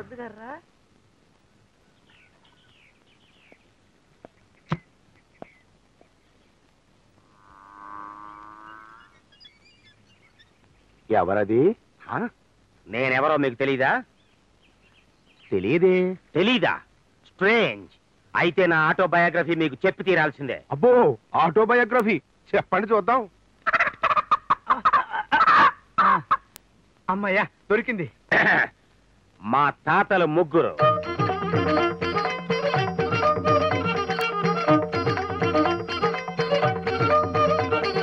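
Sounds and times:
hen clucking and squawking: 0:23.6 - 0:26.5.

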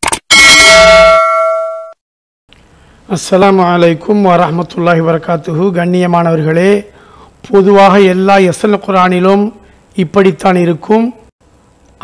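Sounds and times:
bell chime ringing: 0:00.3 - 0:02.0.

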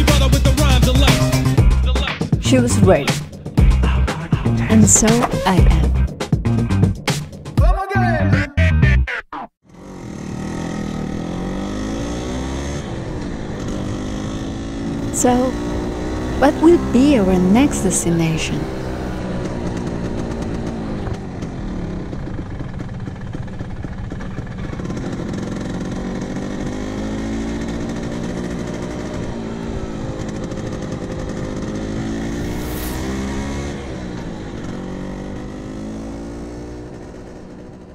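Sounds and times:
scooter engine running: 0:09.7 - 0:37.9.

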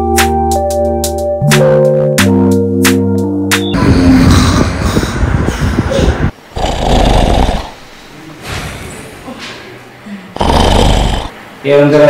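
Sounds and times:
man snoring: 0:06.6 - 0:07.8, 0:10.4 - 0:11.4.

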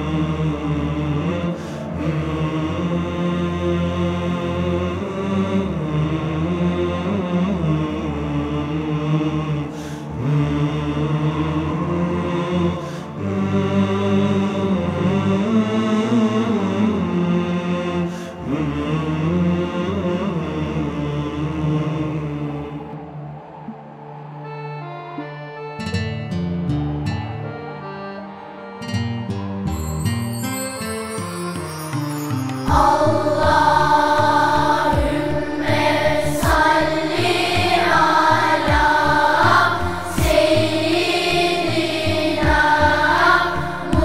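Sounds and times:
group singing a hymn: 0:00.0 - 0:24.1, 0:32.7 - 0:44.0
voices chanting long notes: 0:00.0 - 0:44.0
instrumental backing: 0:24.6 - 0:44.0
low drum beats: 0:32.7 - 0:33.2, 0:35.0 - 0:35.4, 0:36.4 - 0:36.8, 0:38.7 - 0:39.0, 0:40.2 - 0:40.7, 0:42.4 - 0:42.8.

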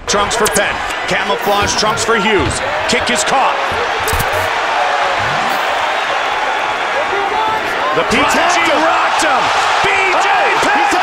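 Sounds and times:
arena crowd roar: 0:00.0 - 0:11.0.

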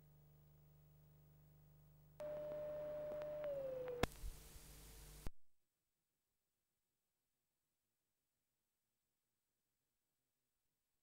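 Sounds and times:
steady electronic tone: 0:02.2 - 0:04.1
faint clicks: 0:02.2 - 0:04.4.

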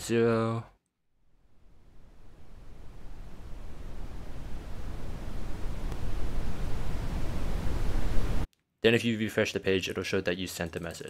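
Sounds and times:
rising hiss with low rumble: 0:01.2 - 0:08.5.

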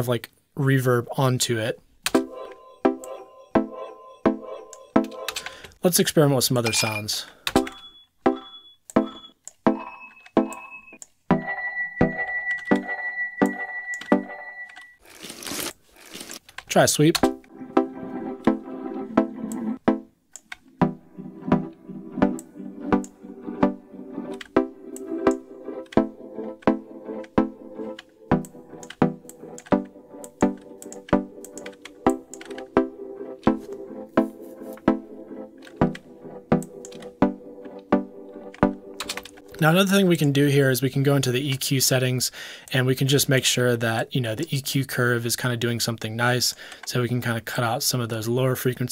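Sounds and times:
synth melody with glassy reverb: 0:02.2 - 0:05.6, 0:07.6 - 0:15.0, 0:17.2 - 0:20.1, 0:20.8 - 0:39.0.

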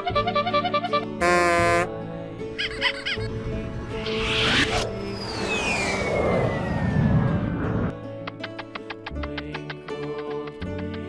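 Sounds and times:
high whistle-like tone gliding down: 0:03.8 - 0:07.9.

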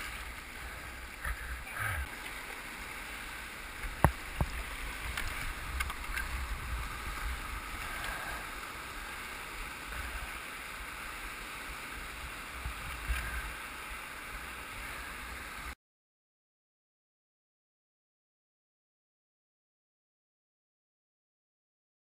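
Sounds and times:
rushing whitewater: 0:00.0 - 0:15.8.

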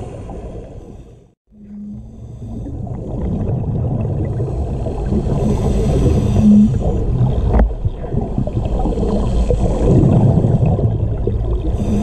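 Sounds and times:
underwater exhaled bubbles: 0:01.9 - 0:12.0.

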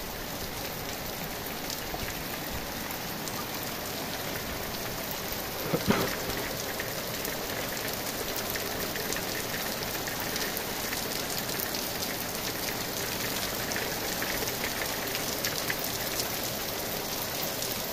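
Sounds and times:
heavy rain falling: 0:00.0 - 0:17.9.

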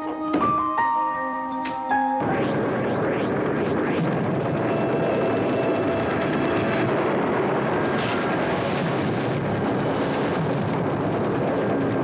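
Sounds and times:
flames burning: 0:02.2 - 0:12.0.

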